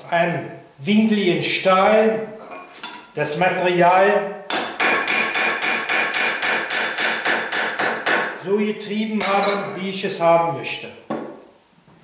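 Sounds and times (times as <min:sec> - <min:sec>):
hammer striking sheet metal: 0:04.5 - 0:08.4, 0:09.2 - 0:09.8.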